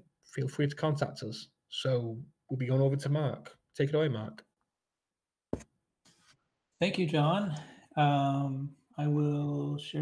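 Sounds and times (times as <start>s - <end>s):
man speaking: 0.3s - 4.5s, 6.8s - 10.0s.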